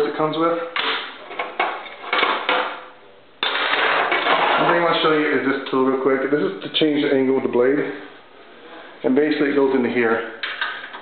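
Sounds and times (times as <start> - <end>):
tools rattling and scraping: 3.4 - 4.9.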